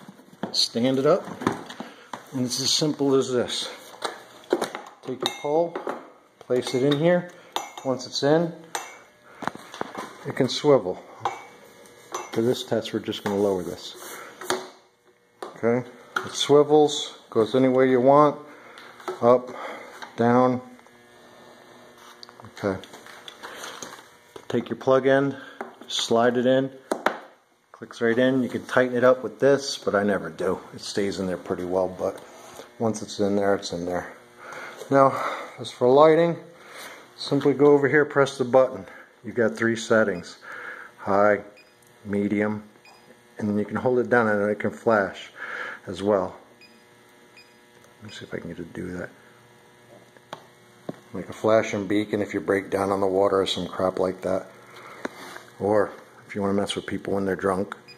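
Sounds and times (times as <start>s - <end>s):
faint steady hum: 0.0s - 57.9s
man speaking: 0.5s - 1.3s, 2.3s - 3.9s, 6.5s - 8.7s, 10.2s - 11.2s, 12.3s - 14.2s, 15.6s - 18.6s, 19.2s - 20.8s, 22.4s - 23.0s, 24.5s - 26.8s, 27.8s - 34.2s, 34.8s - 36.5s, 37.2s - 40.4s, 41.0s - 42.7s, 43.4s - 46.4s, 48.0s - 49.2s, 51.1s - 54.6s, 55.6s - 57.8s.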